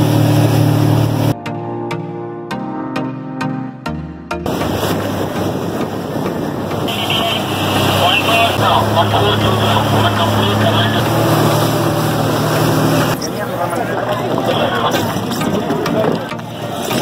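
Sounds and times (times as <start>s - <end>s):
rushing water: 0.0s - 1.4s, 4.4s - 17.0s
motorboat engine drone: 0.0s - 17.0s
wind: 4.4s - 17.0s.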